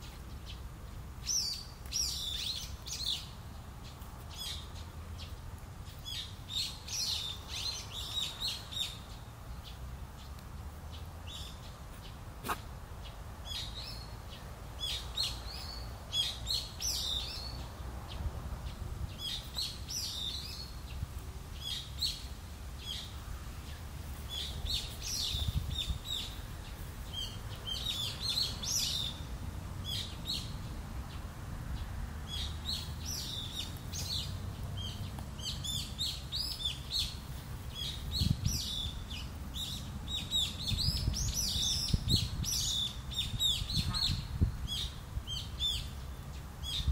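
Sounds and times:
small birds chirping: 0:00.0 - 0:46.9.

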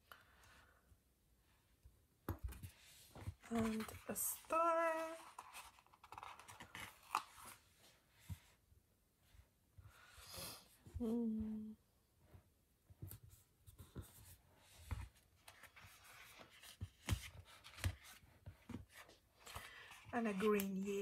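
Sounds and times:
paper rustling: 0:02.5 - 0:07.6
person humming: 0:11.0 - 0:11.8.

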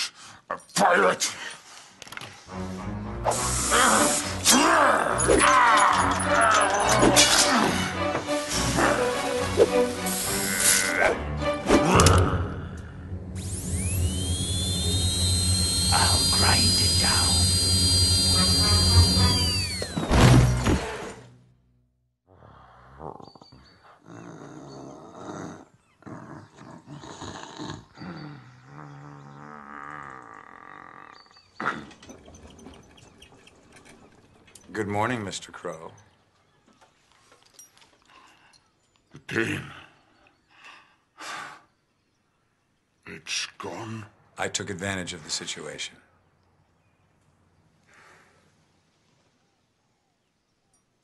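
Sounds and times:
quiet music: 0:02.5 - 0:14.4
dental drill whining: 0:03.3 - 0:04.4, 0:13.4 - 0:21.1.

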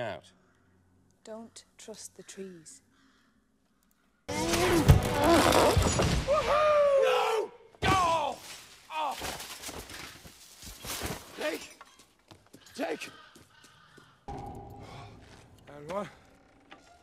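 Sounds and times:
man yelling: 0:06.4 - 0:08.4.

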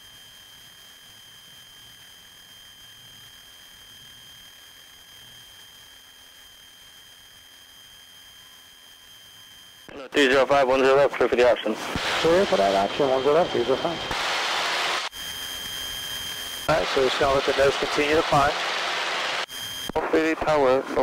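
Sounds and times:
high-pitched electrical whine: 0:00.0 - 0:21.0.

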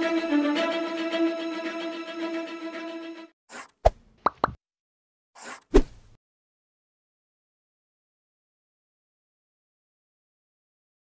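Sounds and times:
background music: 0:00.0 - 0:03.4
short swish: 0:05.4 - 0:06.2.

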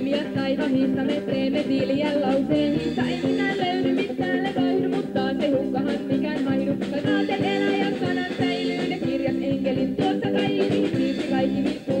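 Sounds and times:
electric guitar: 0:00.0 - 0:12.0
live rock band playing: 0:00.0 - 0:12.0
person singing: 0:00.0 - 0:12.0
steady drum beat: 0:00.0 - 0:12.0.

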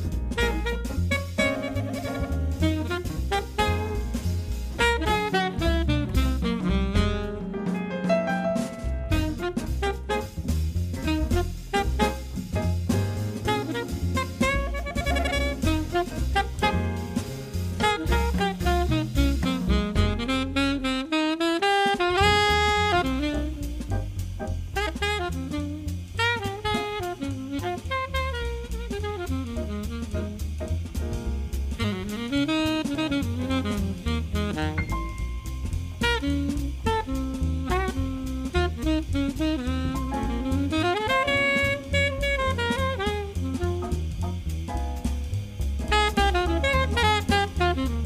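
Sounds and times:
saxophone melody: 0:00.0 - 0:07.6, 0:09.0 - 0:12.6, 0:13.4 - 0:30.9, 0:31.8 - 0:44.5, 0:45.8 - 0:48.0
upright bass: 0:00.0 - 0:21.2, 0:21.9 - 0:48.0
drum kit: 0:00.0 - 0:48.0
piano: 0:00.0 - 0:48.0.

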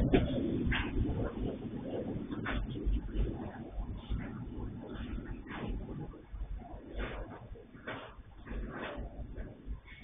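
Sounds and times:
train wagons rumbling past: 0:00.0 - 0:10.0.

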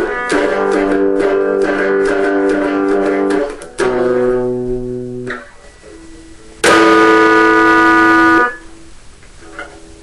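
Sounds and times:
guitar notes: 0:00.0 - 0:10.0.

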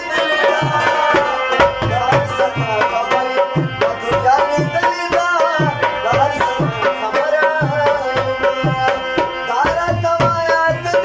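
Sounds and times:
harmonium chords: 0:00.0 - 0:11.0
tabla rhythm: 0:00.0 - 0:11.0.

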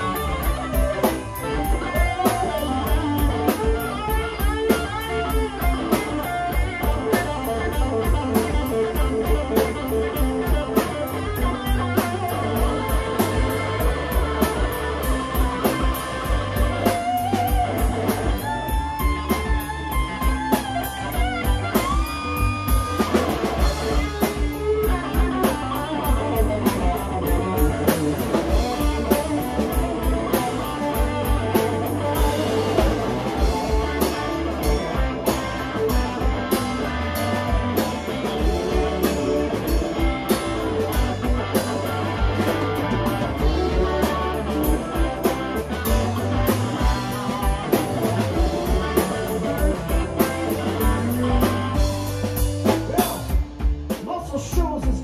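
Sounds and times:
electric guitar lead with bends: 0:00.0 - 0:53.9
drum kit beat: 0:00.0 - 0:55.0.

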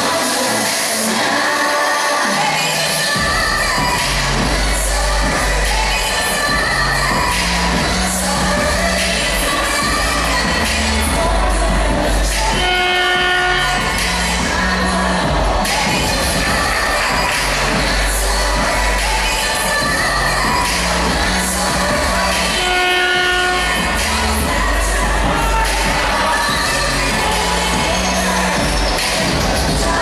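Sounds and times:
loud dance music: 0:00.0 - 0:30.0
horn blast: 0:06.5 - 0:29.9.

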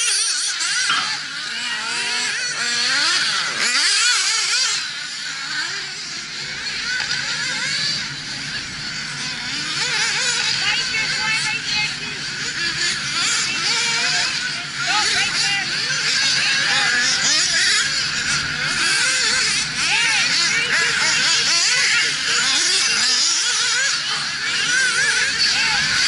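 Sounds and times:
rc car engines whining: 0:00.0 - 0:26.0.

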